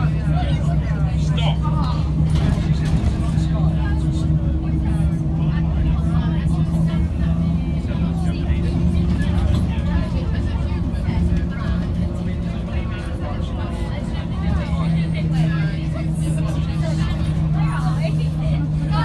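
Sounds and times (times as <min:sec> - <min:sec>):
bus diesel engine drone: 0:00.0 - 0:19.0
passengers chattering: 0:00.0 - 0:19.0
road noise: 0:00.0 - 0:19.0.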